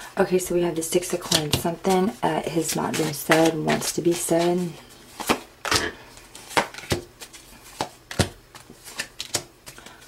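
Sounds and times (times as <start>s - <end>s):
cards snapping on a table: 7.8s - 9.8s.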